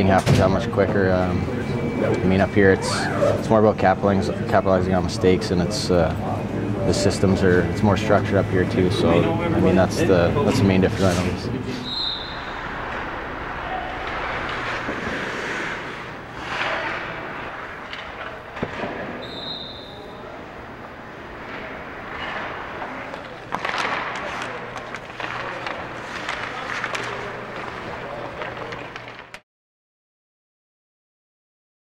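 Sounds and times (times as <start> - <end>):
steady low hum: 0.0 - 29.2
players' voices: 0.0 - 29.4
skates scraping on ice: 12.0 - 19.2, 21.1 - 29.4
stick and puck knocks: 14.0 - 19.2, 21.4 - 29.4.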